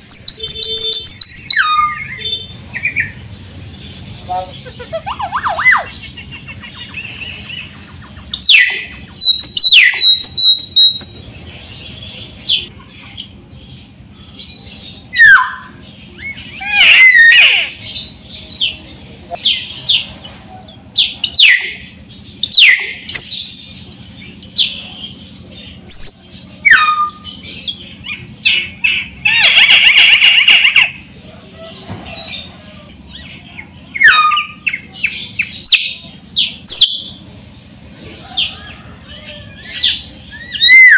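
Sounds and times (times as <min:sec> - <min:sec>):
myna bird whistling: 0:00.0 - 0:03.2, 0:04.2 - 0:11.2, 0:25.5 - 0:31.0, 0:39.1 - 0:40.9
harsh buzzy bird call: 0:15.1 - 0:18.0.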